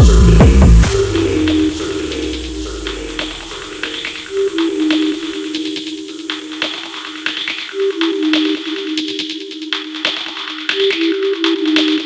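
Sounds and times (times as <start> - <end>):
heavy kick drum: 0.0 - 4.3
low bass tail: 0.0 - 4.4
stepping synth riff: 0.0 - 12.0.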